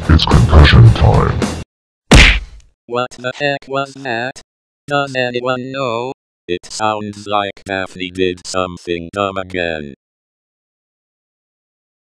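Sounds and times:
cartoon impact bang: 2.1s - 2.6s.

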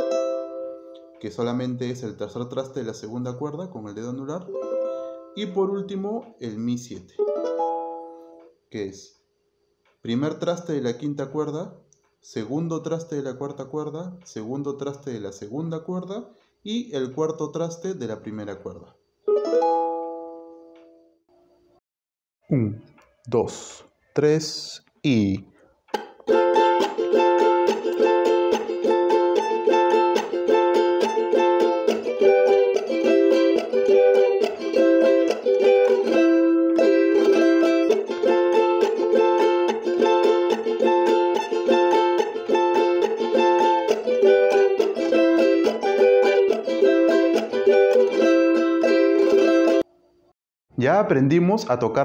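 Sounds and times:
charango strumming: 0.0s - 1.8s, 4.4s - 5.8s, 7.2s - 8.6s, 19.3s - 21.0s, 25.9s - 49.9s.

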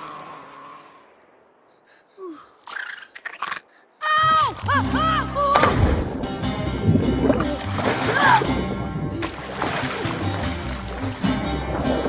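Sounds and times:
rushing splash of water: 5.5s - 6.2s, 7.2s - 11.9s.

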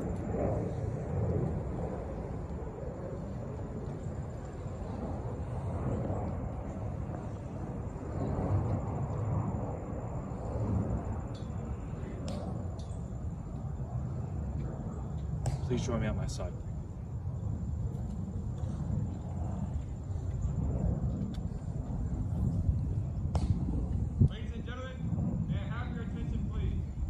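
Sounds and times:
low steady rumble: 0.0s - 27.0s.

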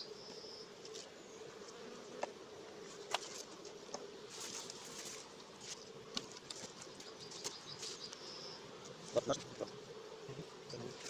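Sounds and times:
honeybees humming: 0.0s - 11.0s.

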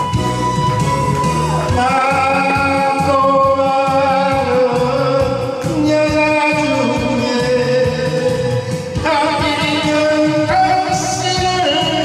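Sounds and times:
backing track with steady beat: 0.0s - 12.0s
man singing karaoke: 1.2s - 12.0s.

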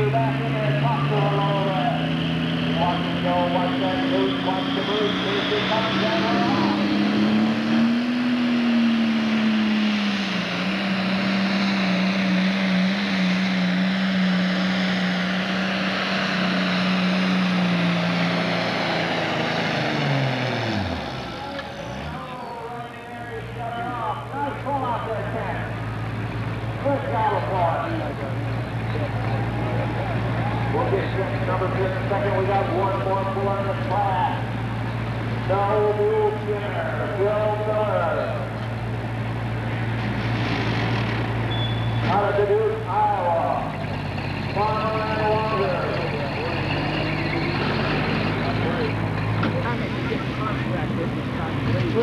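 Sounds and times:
diesel engine at full throttle: 0.0s - 52.0s
engine idle hum: 0.0s - 52.0s.

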